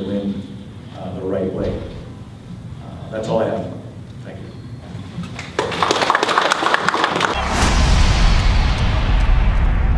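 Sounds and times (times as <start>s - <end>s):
people clapping: 5.3s - 7.4s
deep booming rumble: 7.4s - 9.9s
rising whoosh: 7.4s - 9.9s.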